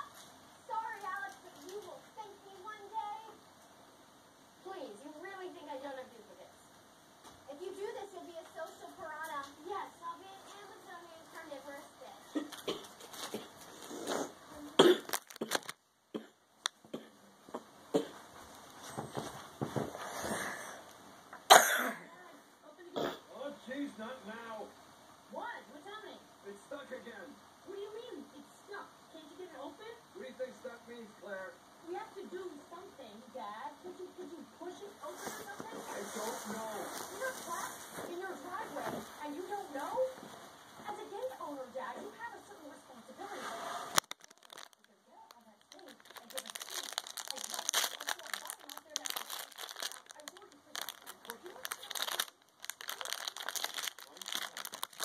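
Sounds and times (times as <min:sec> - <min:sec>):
plastic wrapper crinkling: 0:00.0 - 0:02.7, 0:12.4 - 0:13.9, 0:14.8 - 0:15.8, 0:43.9 - 0:55.0.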